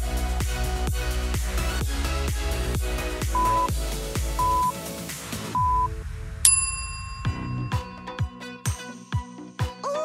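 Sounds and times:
short electronic beep: 3.4 - 3.7, 4.4 - 4.7, 5.6 - 5.9
bright bell-like ding: 6.5 - 8.3.

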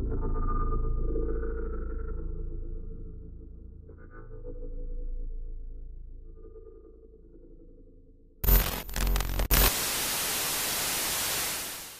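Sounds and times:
distorted glitch noise: 8.4 - 11.9
television static hiss: 8.4 - 11.9.

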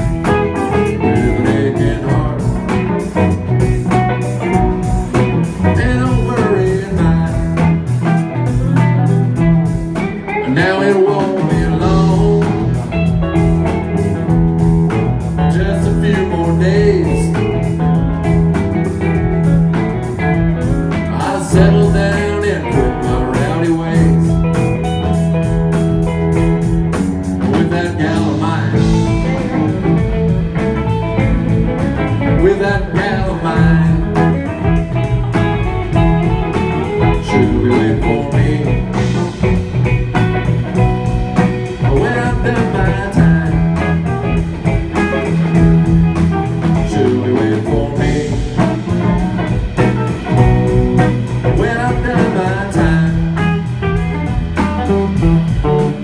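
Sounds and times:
drum beat: 0.0 - 10.7, 11.4 - 56.0
lead guitar: 0.0 - 56.0.

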